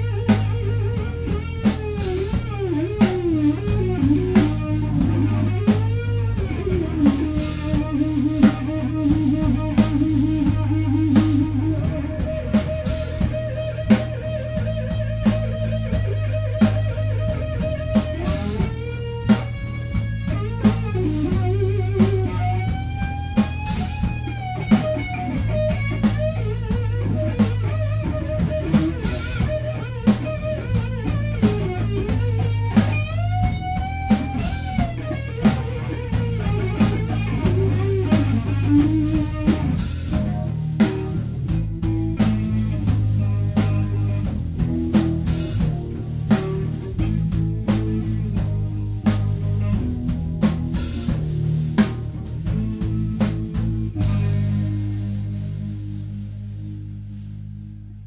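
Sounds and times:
bass guitar: 0.0s - 58.0s
drum kit: 0.0s - 58.0s
electric guitar soloing: 0.0s - 58.0s.

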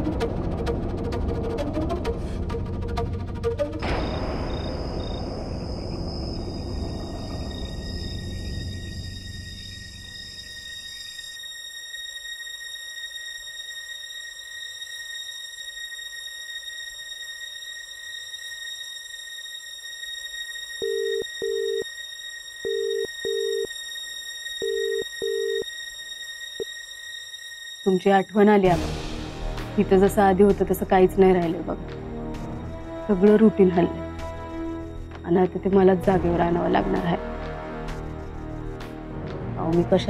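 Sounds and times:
steady high-pitched hum: 2.6s - 39.0s
crickets chirping: 3.9s - 39.9s
telephone ringback double beeps: 20.8s - 21.8s, 22.7s - 23.7s, 24.6s - 25.6s.

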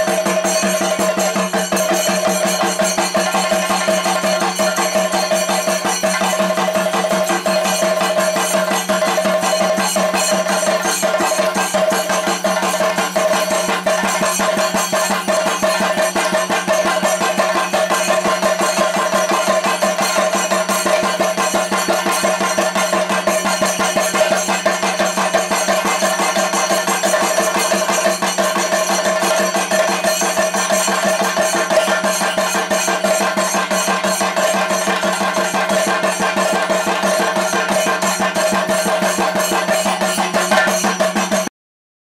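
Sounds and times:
drums beaten fast: 0.0s - 41.5s.

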